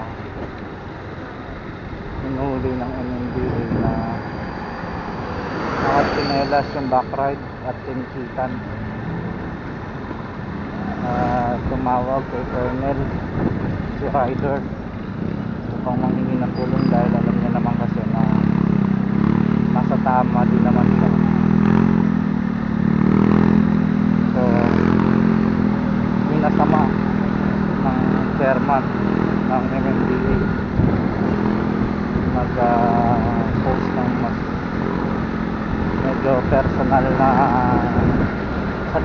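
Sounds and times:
motorcycle engine running: 10.5s - 39.0s
person speaking: 10.8s - 13.2s, 15.7s - 18.6s, 32.3s - 35.2s, 36.0s - 38.1s.

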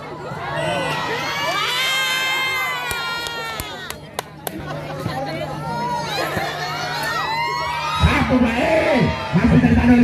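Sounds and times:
crowd cheering and shrieking: 0.0s - 4.0s, 5.5s - 10.0s.

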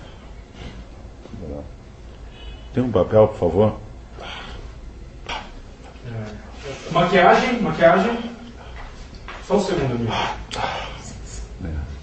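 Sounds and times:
low wordless vocal sounds: 10.0s - 12.0s.

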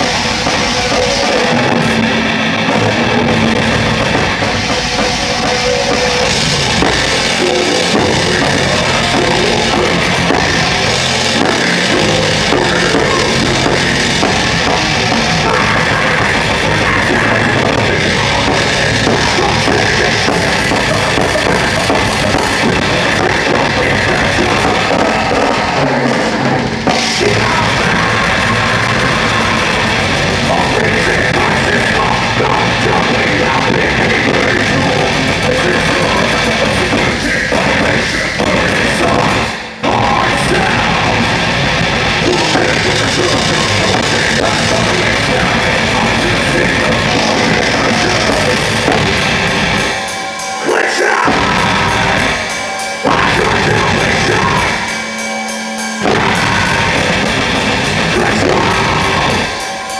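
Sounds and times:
death metal band playing live: 0.0s - 59.9s
drum kit played hard: 0.0s - 59.9s.

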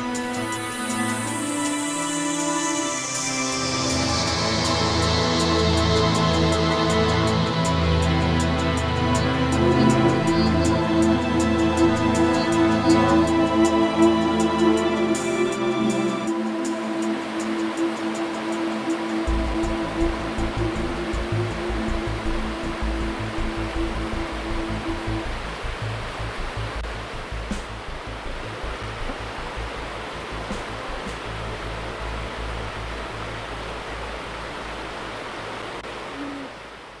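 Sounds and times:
background music: 0.0s - 34.5s
water rushing over rocks: 5.9s - 37.0s.

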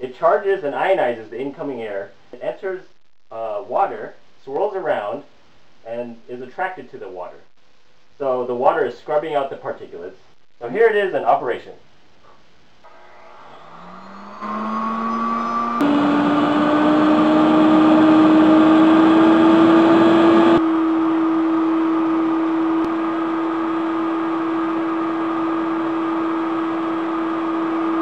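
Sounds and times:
electric blower motor whining: 12.8s - 28.0s.

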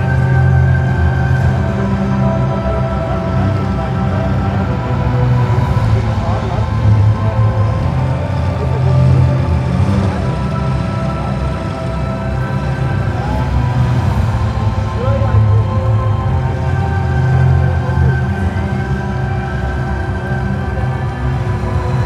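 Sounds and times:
music with strong low bass: 0.0s - 22.0s.

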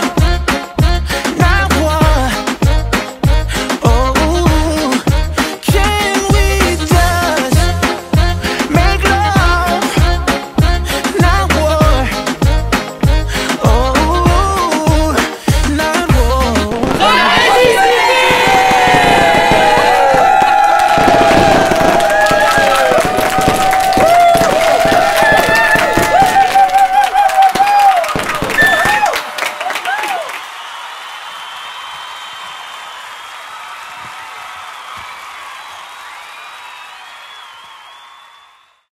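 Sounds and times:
music: 0.0s - 17.4s
group cheering and whooping: 16.9s - 38.9s
clapping: 17.4s - 38.7s.

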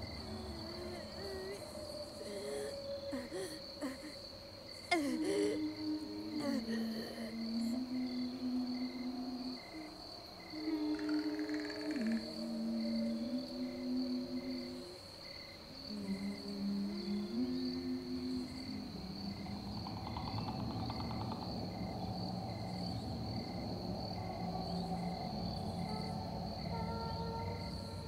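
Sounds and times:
crickets and insects chirping: 0.0s - 28.0s
slow music of held low notes: 0.0s - 28.0s.

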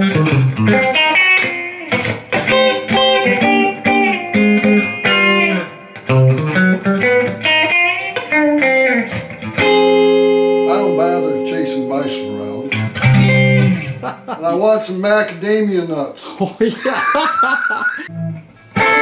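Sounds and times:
electric guitar: 0.0s - 15.5s, 16.9s - 19.0s.

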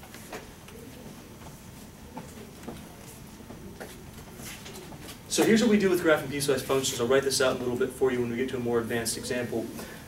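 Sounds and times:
faint footsteps: 0.0s - 7.8s.

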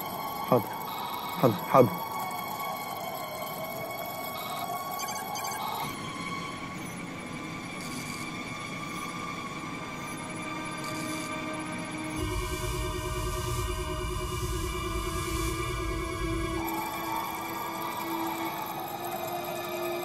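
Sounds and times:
electronic suspense music: 0.0s - 7.0s, 7.6s - 20.0s.

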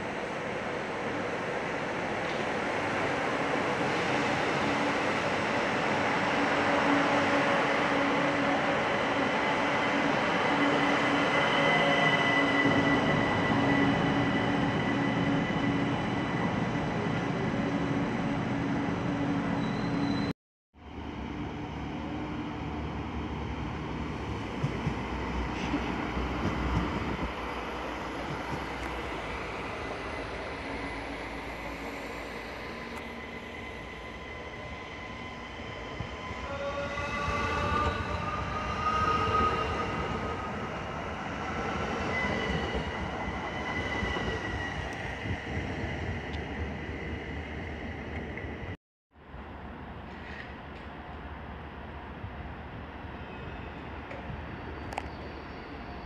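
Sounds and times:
electric train passing close: 21.0s - 48.6s.

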